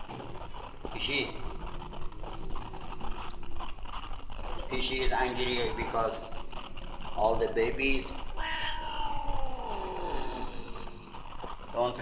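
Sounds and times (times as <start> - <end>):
cat yowling: 8.2 - 10.7.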